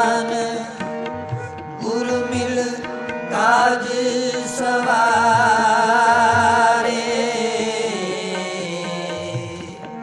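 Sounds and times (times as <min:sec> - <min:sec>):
harmonium chords: 0:00.0 - 0:10.0
man singing: 0:00.0 - 0:10.0.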